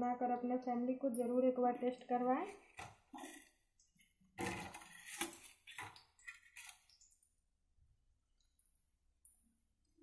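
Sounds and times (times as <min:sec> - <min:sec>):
metal spatula scraping a pan: 0:04.4 - 0:06.8.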